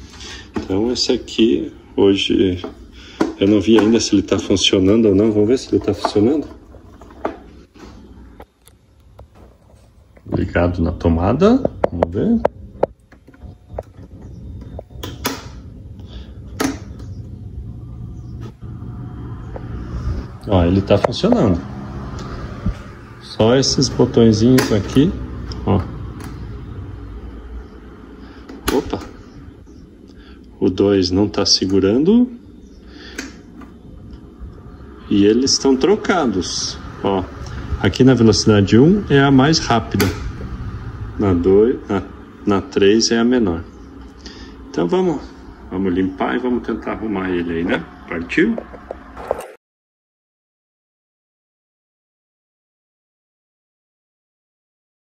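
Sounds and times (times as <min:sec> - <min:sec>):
desk fan humming: 0:00.0 - 0:49.4.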